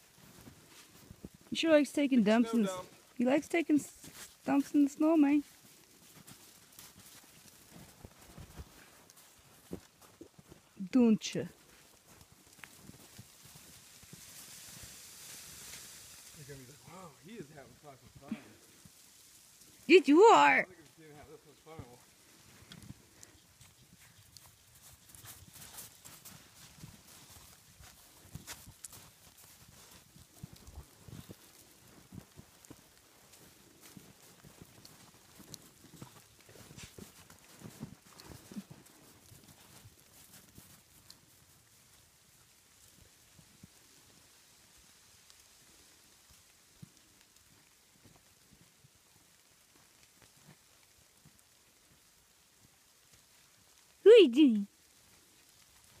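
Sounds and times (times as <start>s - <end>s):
footsteps crunching in snow: 0.0s - 10.8s, 11.5s - 17.0s, 21.2s - 41.8s
faint hiss: 13.4s - 20.0s.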